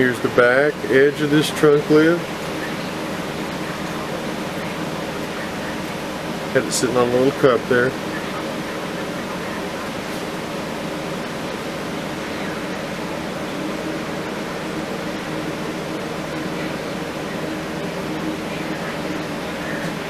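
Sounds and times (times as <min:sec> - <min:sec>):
low hum: 0:00.0 - 0:20.0.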